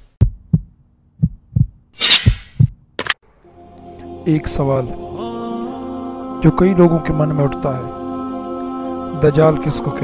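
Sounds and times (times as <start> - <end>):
deep heartbeat-like thumps: 0.0 - 2.8
sustained music pad: 3.2 - 10.0.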